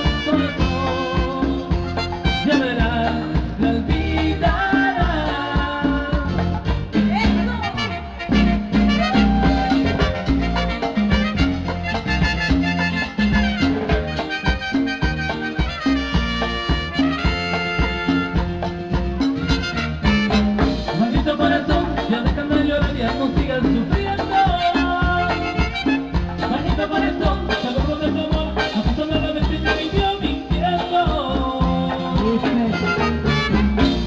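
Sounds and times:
horn section: 0.0 - 3.1, 7.1 - 21.0, 24.4 - 27.7, 32.5 - 34.0
bass and percussion beat: 0.0 - 34.0
latin dance orchestra: 0.0 - 34.0.

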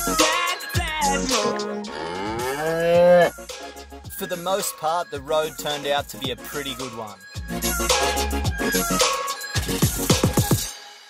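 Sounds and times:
cow mooing: 1.9 - 3.4.

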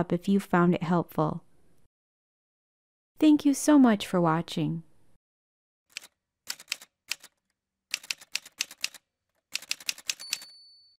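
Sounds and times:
typewriter key clacks: 5.9 - 9.0, 9.6 - 10.6
typewriter bell ringing: 9.6 - 11.0.

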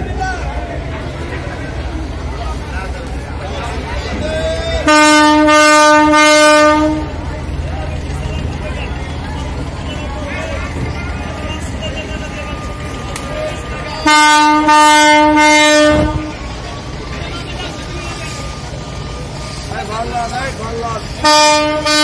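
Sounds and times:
scattered voices: 0.0 - 22.0
boat horn blast: 4.8 - 7.2, 14.0 - 16.4, 21.2 - 22.0.

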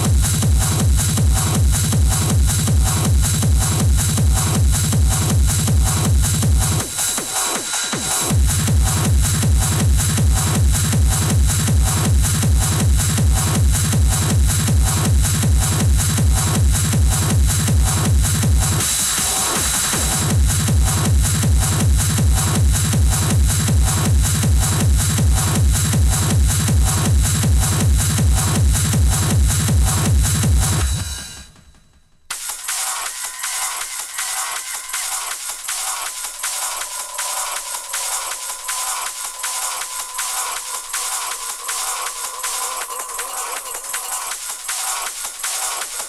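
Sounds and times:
four-to-the-floor kick drum: 0.0 - 46.0
dense high percussion: 32.7 - 46.0.

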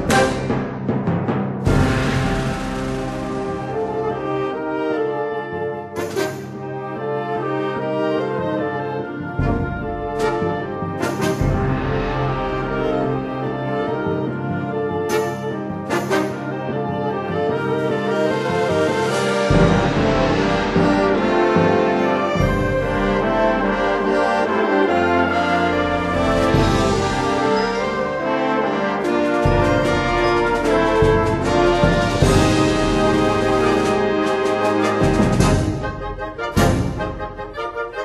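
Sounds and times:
brass band sustained chords: 0.0 - 38.0.

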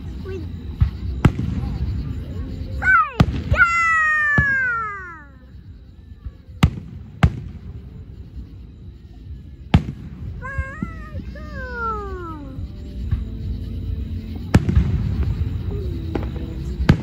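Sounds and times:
fireworks bursting with bangs: 0.0 - 17.0.

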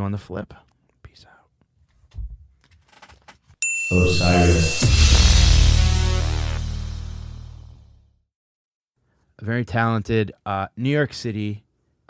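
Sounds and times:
bright bell-like ding: 3.6 - 5.8
music with heavy bass beat: 4.1 - 7.8.

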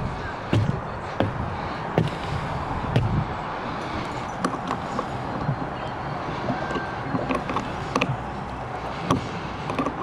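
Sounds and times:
footsteps on fibreglass deck: 0.0 - 9.6.

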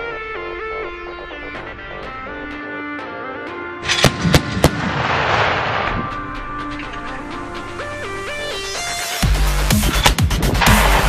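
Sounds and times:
gunshots sharp cracks: 3.8 - 6.2, 10.6 - 11.0
rolling blast: 3.8 - 6.7, 10.5 - 11.0.

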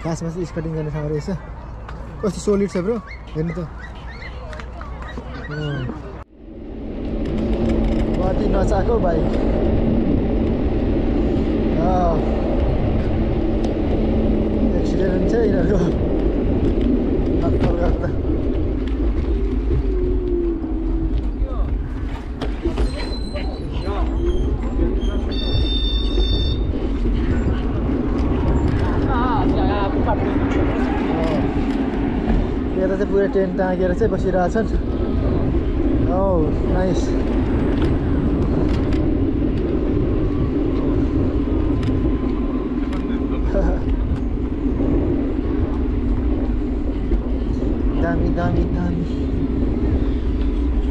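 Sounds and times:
wind rushing over microphone: 0.0 - 50.9
high ringing tone: 25.2 - 26.7.

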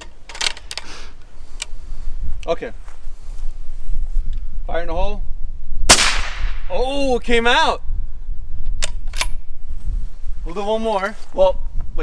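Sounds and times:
steady low rumble: 3.5 - 10.6
rifle bolt metallic clicks: 8.8 - 9.4.

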